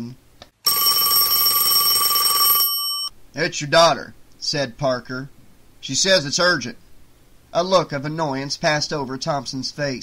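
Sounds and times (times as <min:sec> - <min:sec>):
telephone bell ringing: 0:00.6 - 0:03.1.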